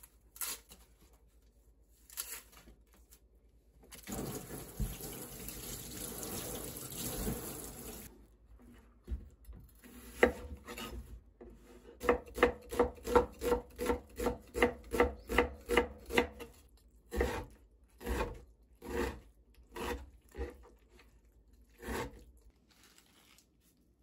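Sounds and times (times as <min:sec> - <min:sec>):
tap water running into sink: 0:04.0 - 0:08.1
knife chopping on wooden board: 0:10.1 - 0:11.0, 0:12.0 - 0:16.5, 0:17.1 - 0:20.6.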